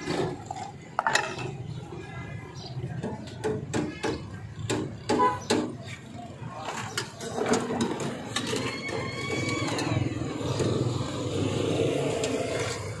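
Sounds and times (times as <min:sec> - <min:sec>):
vehicle engines running: 0:00.0 - 0:13.0.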